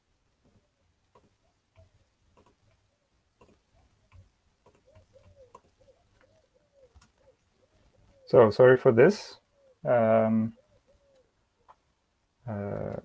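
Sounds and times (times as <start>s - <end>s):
faint clicks: 0.4s - 8.3s, 10.7s - 11.9s
low cooing call: 4.8s - 8.4s.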